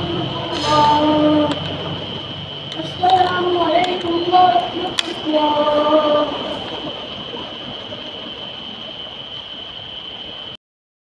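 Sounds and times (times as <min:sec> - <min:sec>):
background ambience: 0:00.0 - 0:10.6
high-pitched tone: 0:00.0 - 0:10.6.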